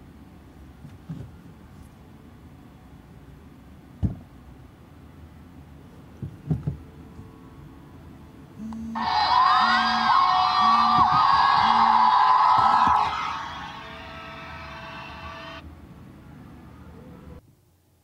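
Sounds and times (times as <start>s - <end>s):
mobile phone ringtone: 8.6s - 13.0s.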